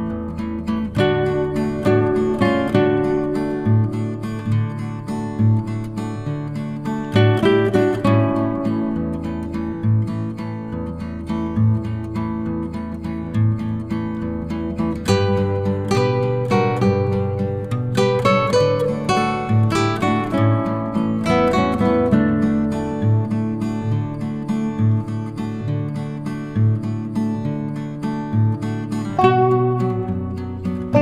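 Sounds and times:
plucked string notes: 0.0 - 31.0.

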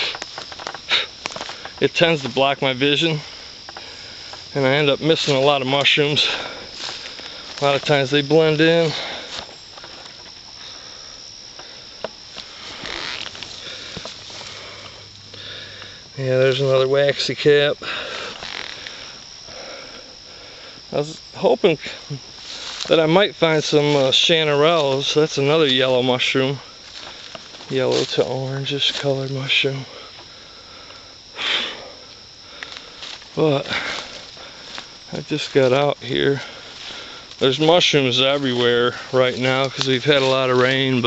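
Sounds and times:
crickets chirping: 0.0 - 41.0
man sniffing: 0.9 - 1.6, 30.0 - 33.0
footsteps in dry leaves: 5.1 - 7.9, 12.3 - 15.4, 22.3 - 23.0, 26.8 - 29.3, 32.7 - 41.0.

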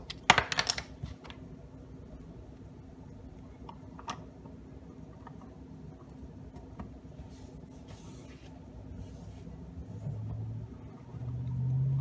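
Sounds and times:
plastic pieces clicking together: 0.0 - 1.0.

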